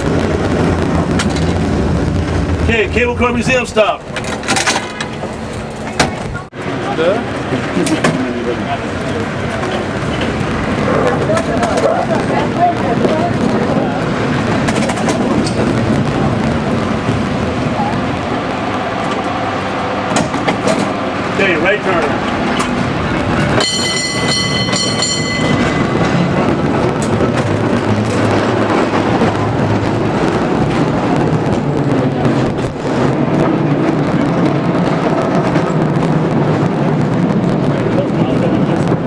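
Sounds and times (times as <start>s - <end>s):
cable car rumbling on rails: 0.0s - 39.0s.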